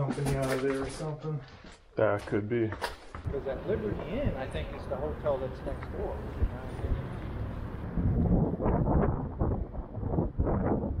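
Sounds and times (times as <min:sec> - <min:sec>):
wind buffeting microphone: 0:05.8 - 0:11.0.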